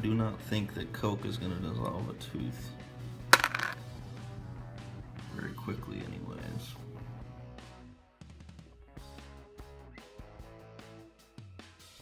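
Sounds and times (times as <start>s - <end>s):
tooth dropping into plastic container: 3.4s - 3.8s.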